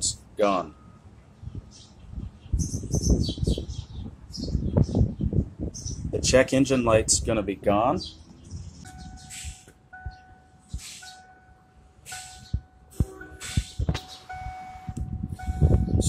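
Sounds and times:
steady electronic tone: 0:08.8 - 0:16.0.

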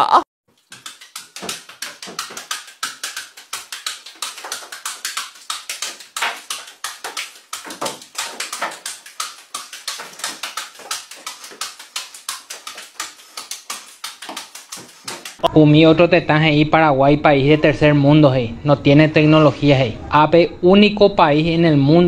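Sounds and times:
apples slapping into hands: 0:00.6 - 0:15.4.

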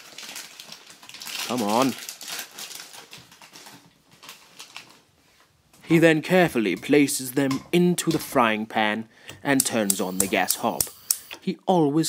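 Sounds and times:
plastic packaging crinkling: 0:00.0 - 0:05.1.

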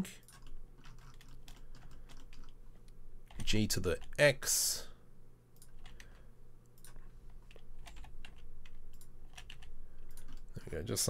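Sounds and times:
faint electrical hum: 0:00.0 - 0:11.0
computer keyboard clicks: 0:00.2 - 0:02.6, 0:06.8 - 0:10.5.

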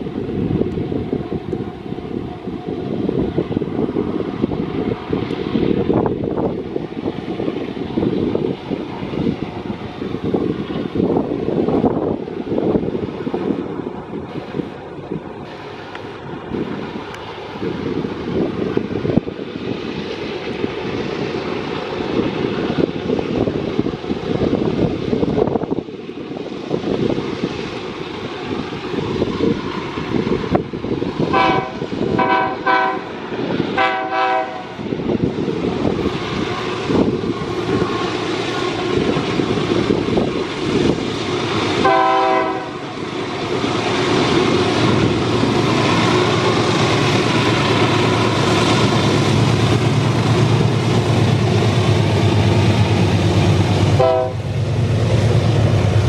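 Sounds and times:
locomotive engines rumbling: 0:00.0 - 0:56.0
train horn blasts: 0:31.3 - 0:33.2, 0:33.8 - 0:34.8, 0:41.8 - 0:42.8, 0:54.0 - 0:54.5.

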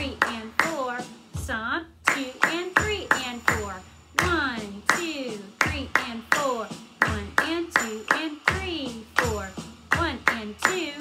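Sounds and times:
hand claps in steady rhythm: 0:00.0 - 0:01.2, 0:02.1 - 0:11.0
woman chanting counts: 0:00.0 - 0:11.0.

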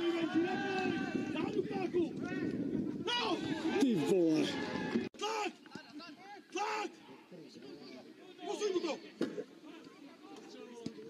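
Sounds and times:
people shouting excitedly: 0:00.0 - 0:05.6, 0:06.2 - 0:07.1.

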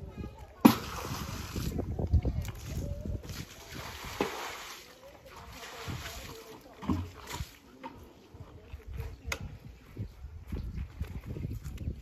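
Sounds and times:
water splashing on concrete: 0:00.5 - 0:07.8.

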